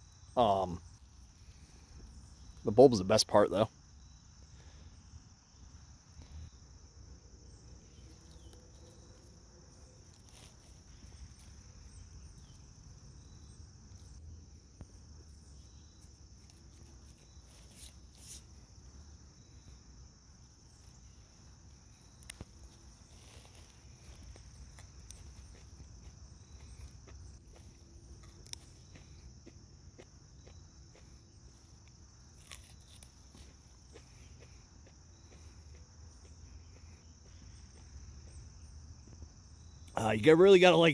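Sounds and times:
rustling: 21.7 - 29.2, 31.0 - 34.4.

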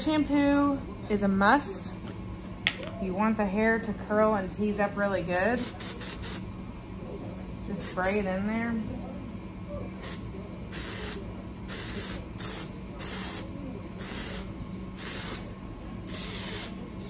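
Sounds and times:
aerosol spray hissing: 10.0 - 15.5, 16.1 - 16.8.

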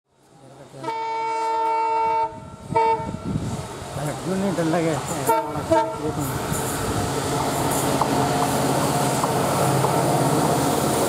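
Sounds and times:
train rumbling: 0.4 - 11.0
locomotive air horn blasts: 0.8 - 3.3, 5.3 - 6.1.

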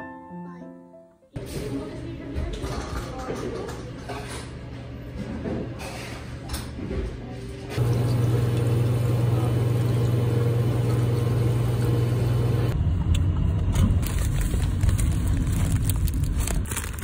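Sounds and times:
low mechanical hum: 4.3 - 17.0.

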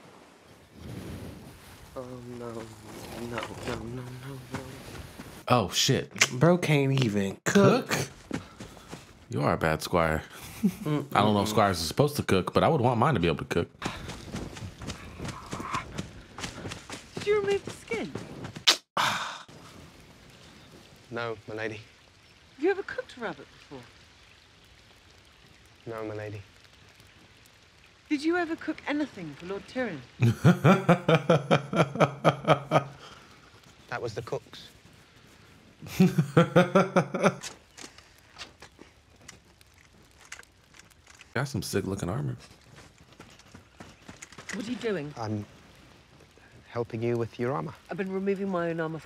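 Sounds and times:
faint clicks and rustles: 1.3 - 5.5, 37.1 - 49.0
light knocks and crackles: 1.6 - 5.4, 37.4 - 45.0
man laughing: 10.4 - 11.2, 30.2 - 33.1, 35.8 - 37.5.

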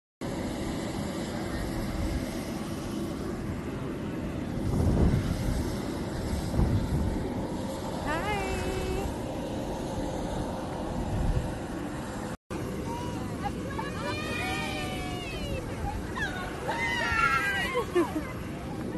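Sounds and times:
outdoor rumble and hiss: 0.2 - 18.9
voices calling out: 12.8 - 18.9
person whooping: 13.8 - 18.2.

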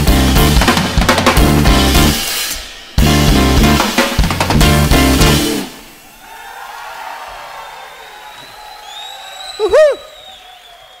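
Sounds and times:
jazz band final chord: 3.0 - 5.7
high whistle from crowd: 7.5 - 11.0
person shouting: 9.6 - 10.1.

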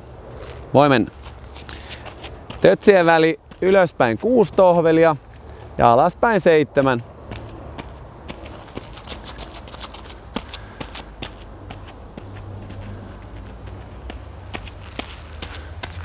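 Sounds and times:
footsteps on sandy path: 0.0 - 16.0.

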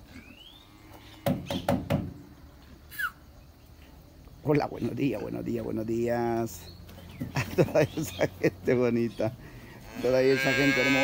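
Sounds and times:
bird chirps: 0.1 - 1.8, 5.8 - 9.4
sharp knocks on wood: 1.2 - 2.2.

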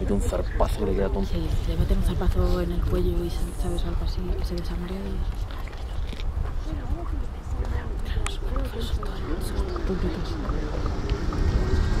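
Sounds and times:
quiet talk: 0.0 - 11.8.

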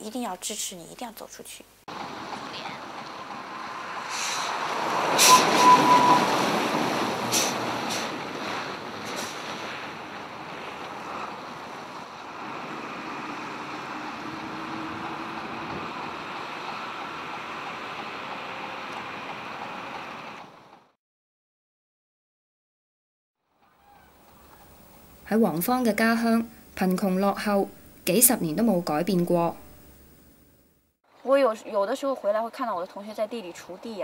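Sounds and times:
truck passing: 1.9 - 21.0.

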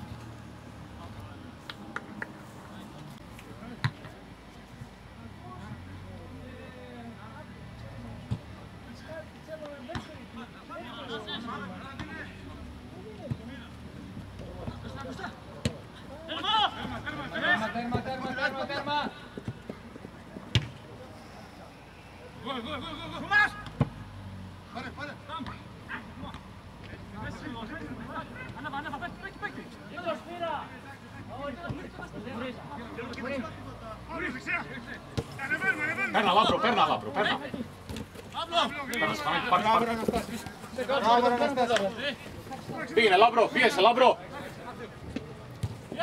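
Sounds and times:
players shouting: 14.8 - 19.4, 22.0 - 23.8, 27.2 - 44.6
ball being kicked: 20.4 - 20.8.

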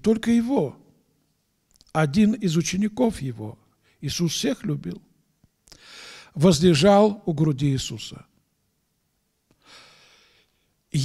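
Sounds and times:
mouth click: 1.7 - 2.0
man breathing in: 5.7 - 6.4, 9.5 - 10.7.

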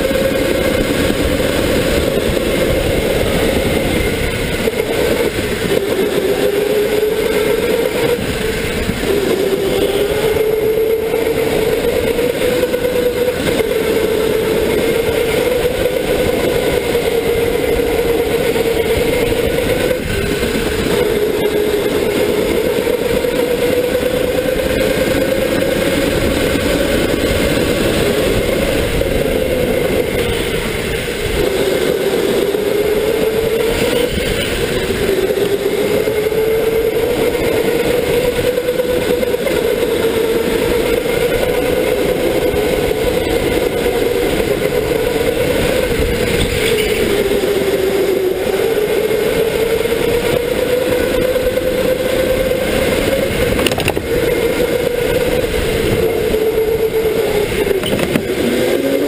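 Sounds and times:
electric motor whining: 0.0 - 59.0
steady rushing noise: 0.0 - 59.0.

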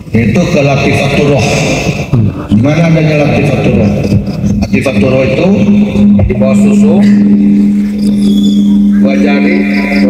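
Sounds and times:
steady low hum: 0.0 - 10.0
faint higher tone: 6.0 - 10.0.

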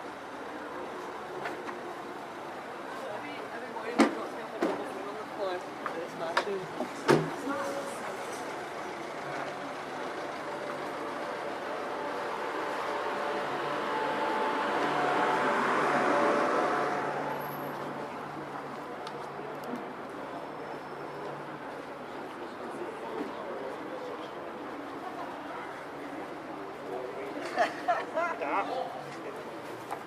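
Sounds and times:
vehicle passing on street: 6.6 - 23.2.

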